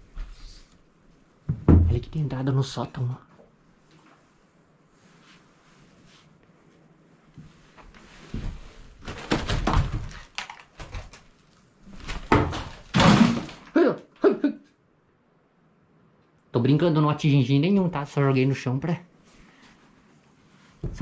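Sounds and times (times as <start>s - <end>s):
objects thudding onto floor: 8.3s - 11.2s, 12.0s - 13.7s.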